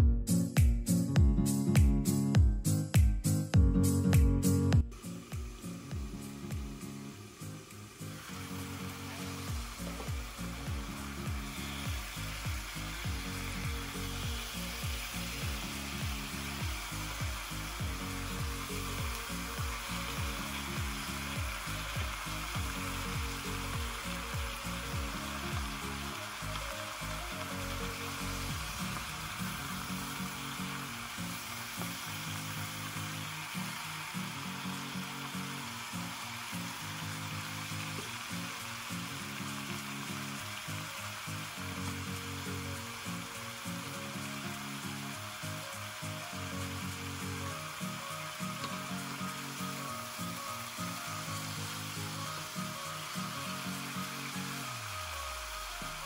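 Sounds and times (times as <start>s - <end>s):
chicken sizzling in oil: 4.8s - 56.0s.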